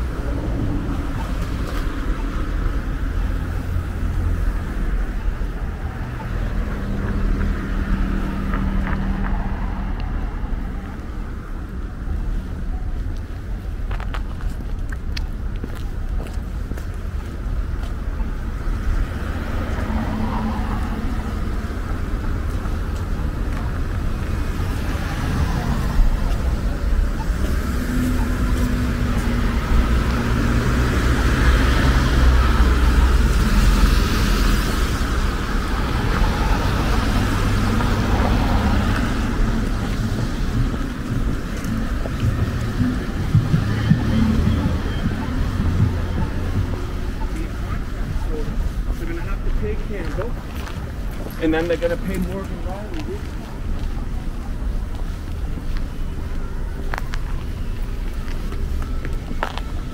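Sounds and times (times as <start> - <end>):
cars driving past: 0.0 - 12.4, 16.4 - 59.9.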